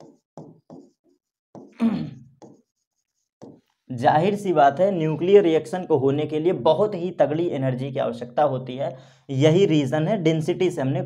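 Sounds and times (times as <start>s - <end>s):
pen scratching on screen: 0.0s - 3.8s.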